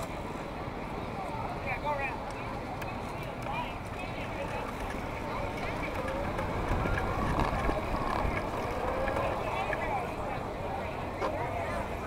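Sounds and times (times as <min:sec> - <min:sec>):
crowd voices: 0:00.0 - 0:12.0
vehicle rumbling slowly: 0:00.0 - 0:12.0.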